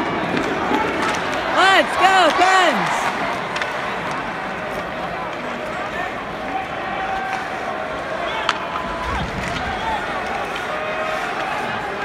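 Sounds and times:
indistinct voices of fans: 0:00.0 - 0:12.0
murmur of large crowd: 0:00.0 - 0:12.0.

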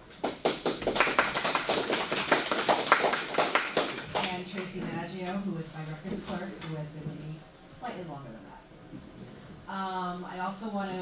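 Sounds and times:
people applauding: 0:00.0 - 0:04.8.

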